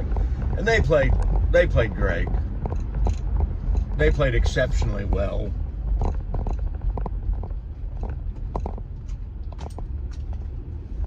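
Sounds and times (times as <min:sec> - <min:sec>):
light rattles: 0:00.0 - 0:11.0
vehicle rumble from inside cab: 0:00.0 - 0:11.0.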